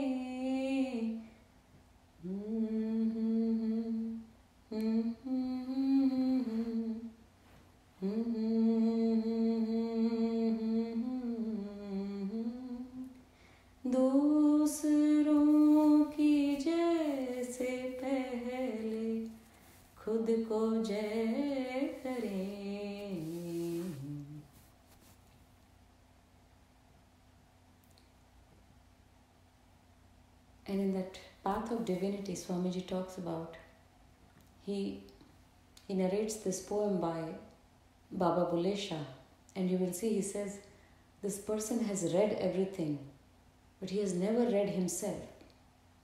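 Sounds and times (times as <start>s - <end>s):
person humming a slow melody: 2.2s - 7.2s, 8.0s - 13.2s, 14.0s - 24.6s.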